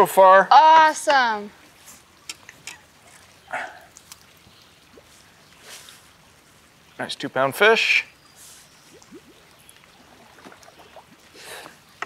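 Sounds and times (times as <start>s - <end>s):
small water splashes: 1.5s - 7.0s, 8.0s - 12.0s.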